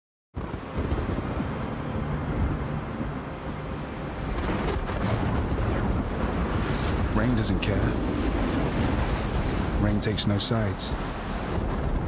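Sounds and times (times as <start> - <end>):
hiss of wind or rain: 0.4 - 12.0
thunder rumbling: 0.4 - 12.0.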